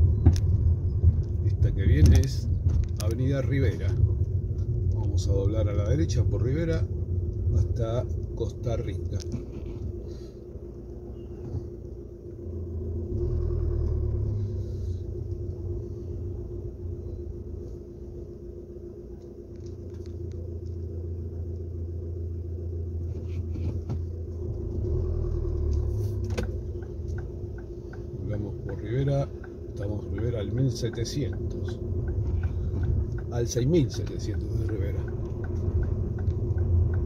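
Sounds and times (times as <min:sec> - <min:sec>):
car engine idling: 0:00.0 - 0:37.0.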